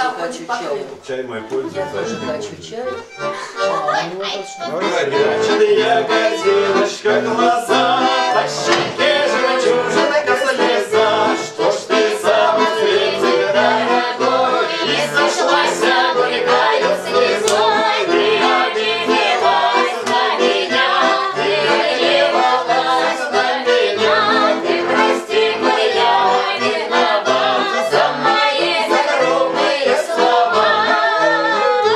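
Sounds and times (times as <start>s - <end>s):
button accordion: 1.0s - 31.9s
folk song with singing: 3.2s - 31.9s.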